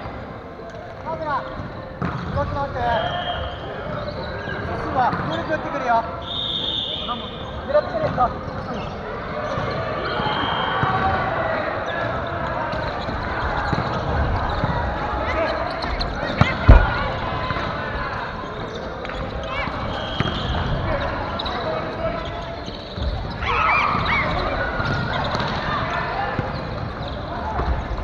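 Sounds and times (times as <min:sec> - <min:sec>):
players' voices and calls: 0:00.0 - 0:28.0.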